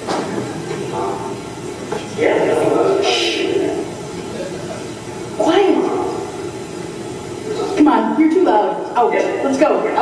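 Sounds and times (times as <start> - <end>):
woman shushing: 3.0 - 3.5.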